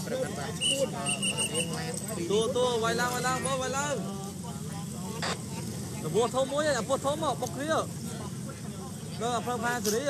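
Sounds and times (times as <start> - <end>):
people talking: 0.0 - 10.0
road traffic hum: 0.0 - 10.0.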